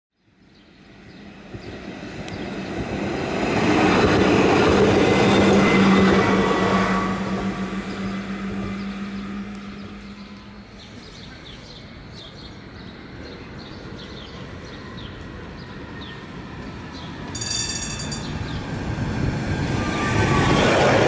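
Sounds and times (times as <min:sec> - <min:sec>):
tram passing on track: 0:00.3 - 0:21.0.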